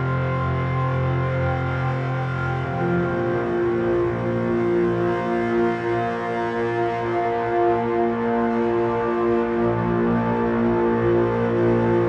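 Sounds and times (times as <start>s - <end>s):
music with sustained notes: 0.0s - 12.0s.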